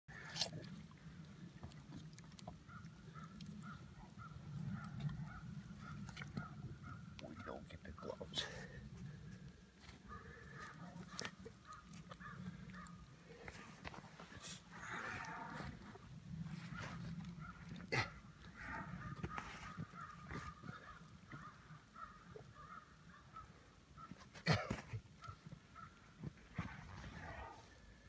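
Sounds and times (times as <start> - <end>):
bear breathing and rustling: 12.2 - 21.5.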